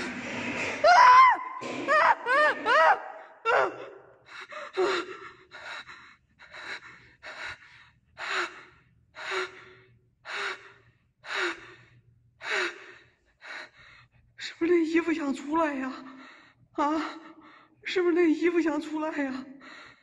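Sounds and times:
person breathing heavily: 4.3 - 14.3.

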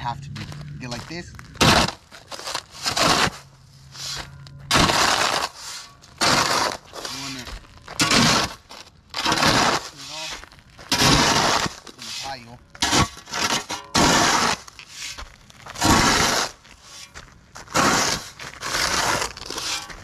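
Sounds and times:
shovel scraping gravel: 0.0 - 20.0.

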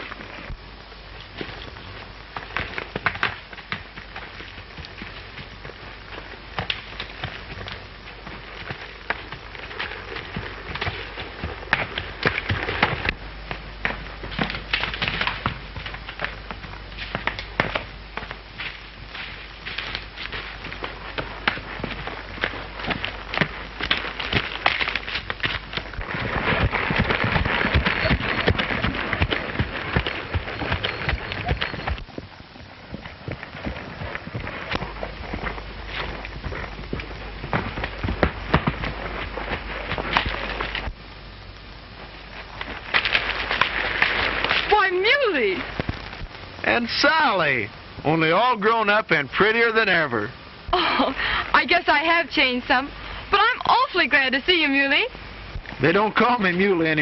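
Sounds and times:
horse hooves through dry leaves: 0.0 - 50.1, 50.7 - 57.0.

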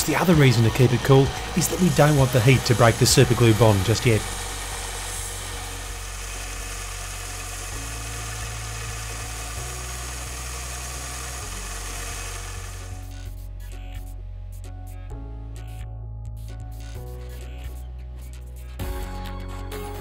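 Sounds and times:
belt sander grinding metal: 0.0 - 13.1
soft background music: 0.0 - 20.0.

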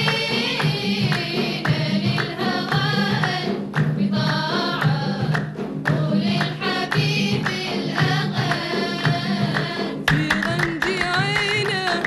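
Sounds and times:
sharp handclaps: 0.0 - 12.0
women singing together: 0.0 - 12.0.

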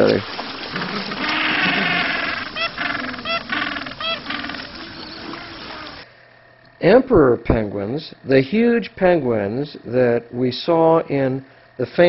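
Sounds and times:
penguins calling: 0.0 - 6.0
rookery background noise: 0.0 - 12.0.

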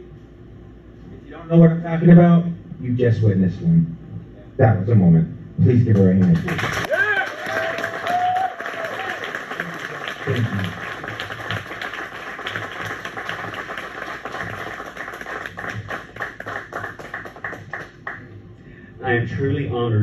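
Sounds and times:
audience applauding: 5.9 - 18.3.

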